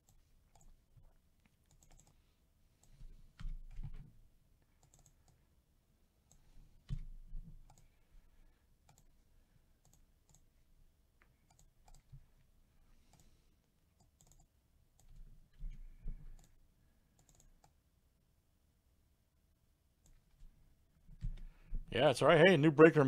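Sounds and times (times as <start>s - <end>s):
mouse and keyboard clicks: 1.5s - 2.2s, 14.0s - 15.2s.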